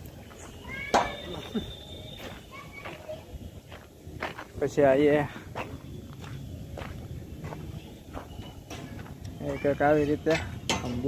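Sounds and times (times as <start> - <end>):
footsteps on pavement: 0.0 - 10.6.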